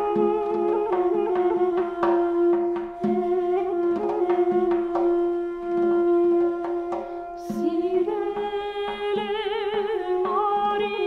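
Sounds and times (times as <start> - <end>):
duduk sustained note: 0.0 - 11.0
woman singing: 0.0 - 11.0.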